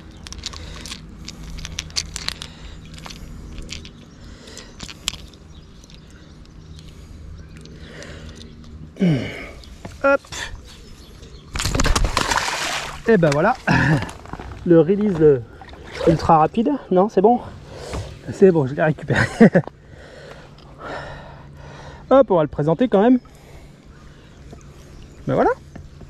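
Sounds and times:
fishing hooks clicking and rustling: 0.0 - 8.8
water splashing: 11.6 - 14.1.

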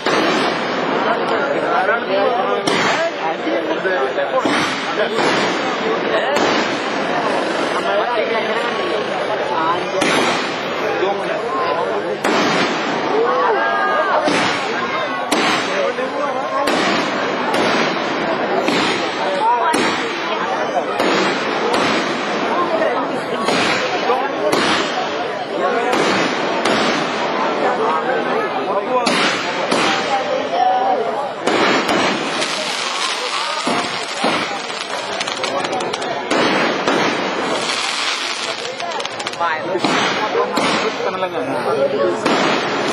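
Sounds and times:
aerial fireworks bangs: 0.0 - 3.3, 4.4 - 7.8, 10.0 - 10.9, 12.2 - 13.2, 14.2 - 27.7, 29.0 - 30.3, 31.4 - 41.2, 42.2 - 42.9
crowd chatter: 0.0 - 42.9.

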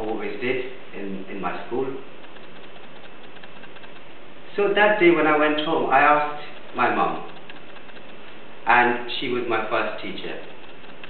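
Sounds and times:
room background hiss: 0.0 - 11.0.

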